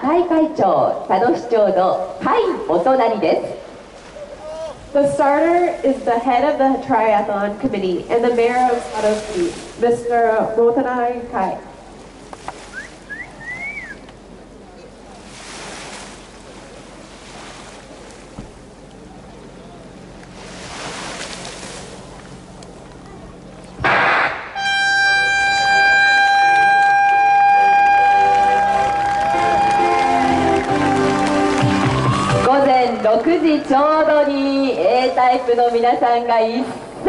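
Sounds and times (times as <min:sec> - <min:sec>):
voices: 0:00.0 - 0:11.7, 0:25.0 - 0:37.0
outdoor background noise: 0:00.0 - 0:37.0
air horn blast: 0:23.8 - 0:32.5.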